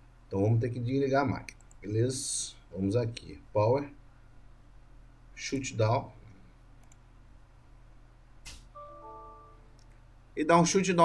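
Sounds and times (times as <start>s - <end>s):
low room hum: 0.0s - 11.0s
faint computer mouse click: 6.8s - 7.0s.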